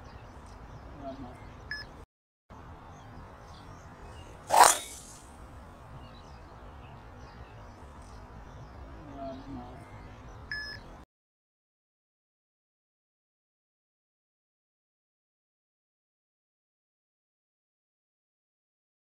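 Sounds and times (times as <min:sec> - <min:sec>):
outdoor background noise: 0:00.0 - 0:11.1
golf club striking ball: 0:04.5 - 0:05.2.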